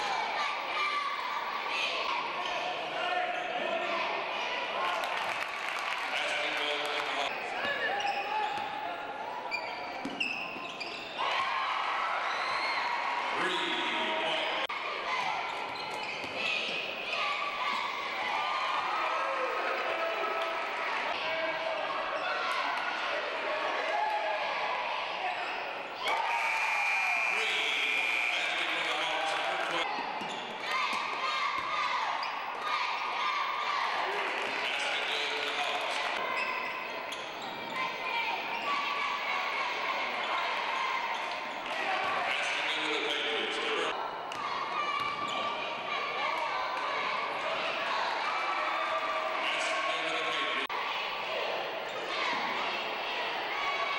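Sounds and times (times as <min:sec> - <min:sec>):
crowd voices: 0:00.0 - 0:53.9.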